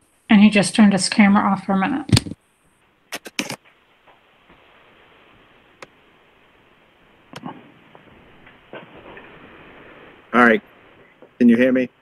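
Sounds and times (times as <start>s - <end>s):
open microphone hiss: 0.0s - 12.0s
sharp click: 3.1s - 3.6s.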